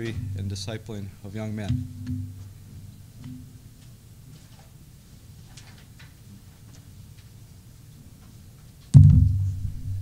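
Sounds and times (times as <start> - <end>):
steady low hum: 0.0 - 5.6, 6.2 - 10.0.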